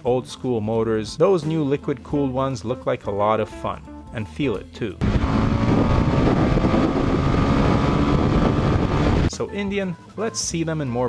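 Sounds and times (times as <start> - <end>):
motorcycle engine accelerating: 5.0 - 9.3
wind rushing: 5.0 - 9.3.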